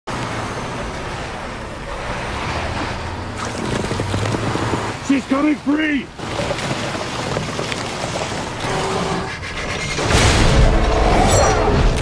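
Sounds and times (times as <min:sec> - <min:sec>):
tyre crunching through ice: 0:03.4 - 0:05.1, 0:06.2 - 0:08.8.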